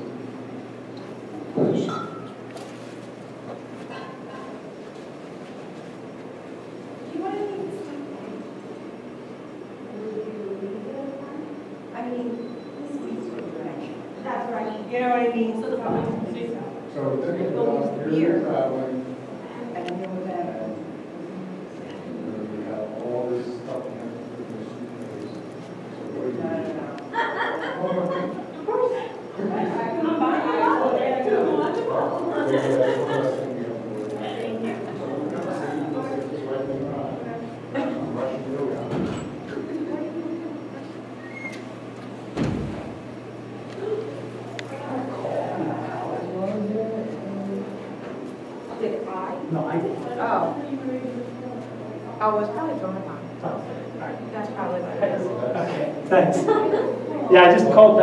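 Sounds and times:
room noise: 0.0s - 58.0s
people talking indistinctly: 43.7s - 58.0s.

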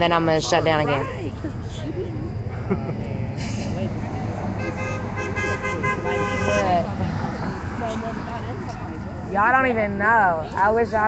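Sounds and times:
distant voices: 0.0s - 11.0s
street traffic: 0.0s - 11.0s
car horn honking: 0.7s - 1.2s, 4.6s - 6.9s.

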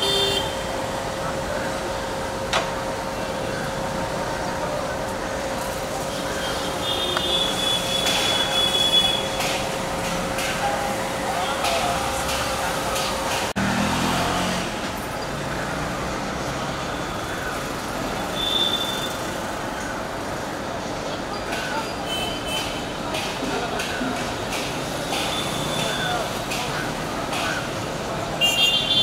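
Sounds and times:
passing vehicles humming: 0.0s - 20.8s
distant voices: 0.0s - 29.0s.

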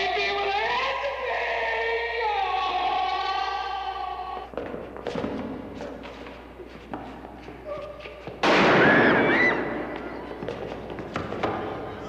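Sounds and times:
loud ringing bang: 8.4s - 9.8s.

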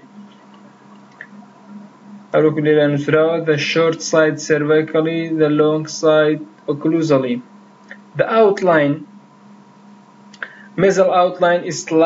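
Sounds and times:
recording hiss and hum: 0.0s - 12.0s
person speaking: 0.1s - 9.2s, 10.4s - 12.0s.

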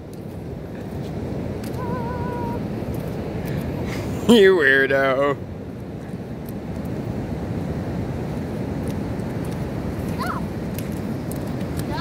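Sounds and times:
wind buffeting microphone: 0.0s - 12.0s
ocean surf breaking: 0.4s - 12.0s.

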